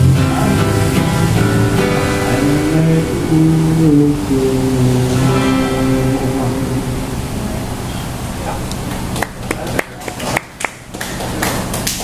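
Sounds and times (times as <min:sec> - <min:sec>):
audience hand claps: 0:08.8 - 0:12.0.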